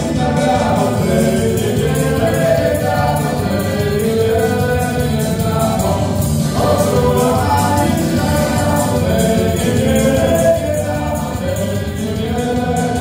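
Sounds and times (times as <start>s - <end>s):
live dance band playing folk tune: 0.0s - 13.0s
person singing: 0.0s - 13.0s.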